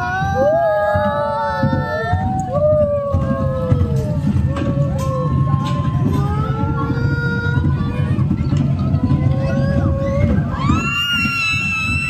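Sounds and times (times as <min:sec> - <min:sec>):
low rumble: 0:00.0 - 0:12.0
roller coaster riders screaming: 0:00.0 - 0:12.0.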